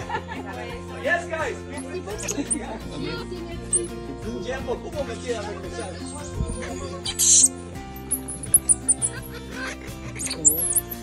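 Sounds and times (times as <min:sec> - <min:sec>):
background music: 0:00.0 - 0:11.0
monkeys squeaky chirps: 0:01.7 - 0:02.7, 0:03.7 - 0:04.0, 0:05.7 - 0:11.0.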